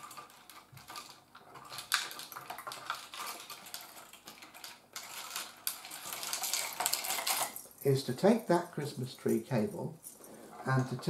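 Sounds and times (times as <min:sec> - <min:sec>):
wire rustling: 0:00.0 - 0:11.0.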